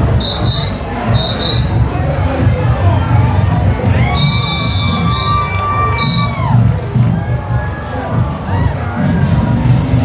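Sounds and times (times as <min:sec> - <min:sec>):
shrill whistle toots: 0:00.0 - 0:01.8, 0:04.0 - 0:06.4
marching drumline cadence: 0:00.0 - 0:02.8
crowd cheering and shouting: 0:00.0 - 0:10.0.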